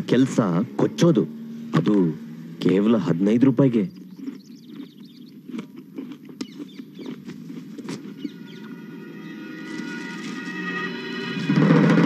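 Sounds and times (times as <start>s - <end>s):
faint bird chirps: 3.2s - 5.5s, 6.4s - 7.2s, 7.9s - 10.2s
sustained music chord: 8.1s - 12.0s.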